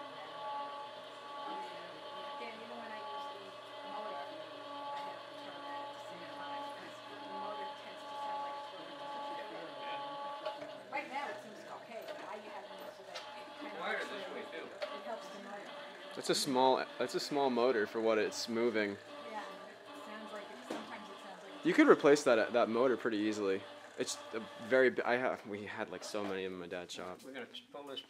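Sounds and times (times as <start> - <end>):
small electric motor whining: 0.0 - 26.1.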